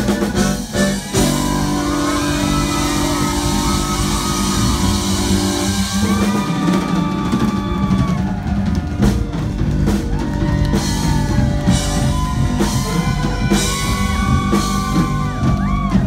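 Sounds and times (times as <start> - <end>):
accordion melody: 0.0 - 6.1
bass: 0.0 - 16.0
drum kit: 0.0 - 16.0
guitar: 0.0 - 16.0.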